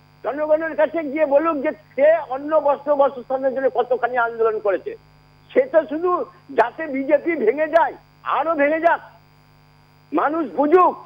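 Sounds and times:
telephone line hum: 0:00.0 - 0:11.0.

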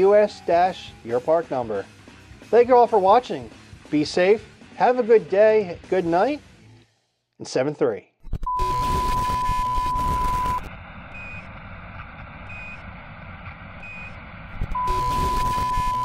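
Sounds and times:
short high beeps: 0:08.4 - 0:10.6, 0:13.8 - 0:16.0
steady test tone: 0:08.4 - 0:13.0, 0:13.8 - 0:16.0
static hiss: 0:08.7 - 0:10.7, 0:14.6 - 0:16.0.

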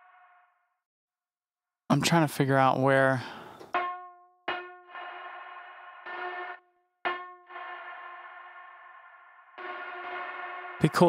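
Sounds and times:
sharp synth note ringing: 0:00.0 - 0:00.6, 0:03.8 - 0:11.0
overtone-rich synth tone: 0:03.7 - 0:11.0.

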